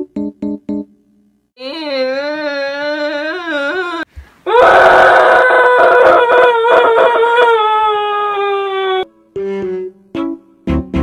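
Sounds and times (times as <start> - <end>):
girl wailing: 1.6 - 9.1.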